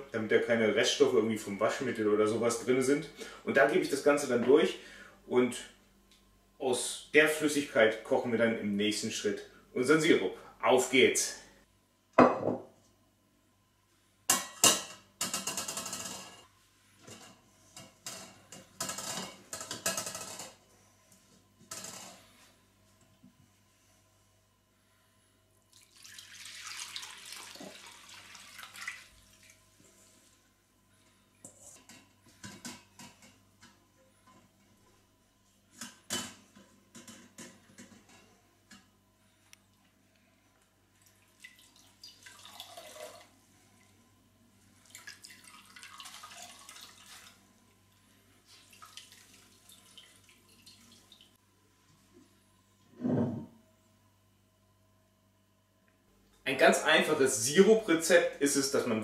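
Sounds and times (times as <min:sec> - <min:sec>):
wet cloth wrung out dripping: 0:25.7 - 0:29.6, 0:41.0 - 0:43.3, 0:44.8 - 0:47.4, 0:48.4 - 0:51.4
liquid pouring and splashing: 0:25.7 - 0:29.7, 0:41.0 - 0:43.4, 0:44.8 - 0:47.5, 0:48.4 - 0:51.4.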